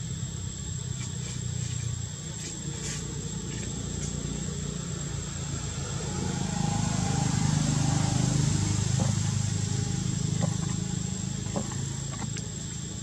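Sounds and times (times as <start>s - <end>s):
vehicle engine hum: 0.0s - 13.0s.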